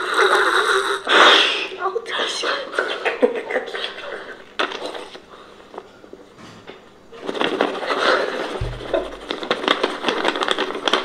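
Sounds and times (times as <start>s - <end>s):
short low hum: 8.6s - 9.5s.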